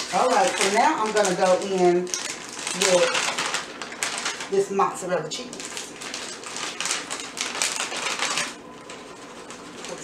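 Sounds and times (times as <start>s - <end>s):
plastic bag crinkling: 0.0s - 10.0s.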